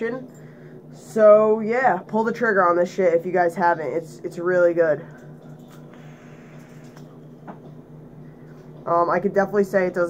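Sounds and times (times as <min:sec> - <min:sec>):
low hum: 0:03.8 - 0:10.0
crackling of wet coil: 0:05.3 - 0:07.2
air drawn through vape: 0:05.9 - 0:07.1.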